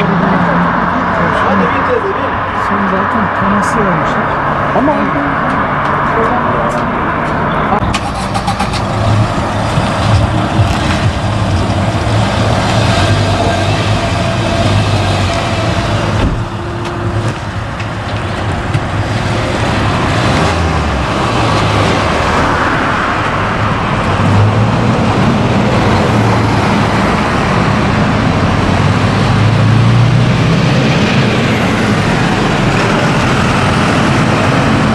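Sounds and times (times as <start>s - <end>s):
traffic passing: 0.0s - 34.9s
vehicle engines running: 0.0s - 34.9s.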